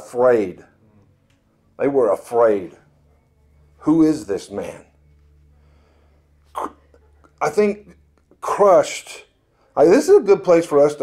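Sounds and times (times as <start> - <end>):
low room hum: 0.0 - 11.0
person sneezing: 6.5 - 7.0.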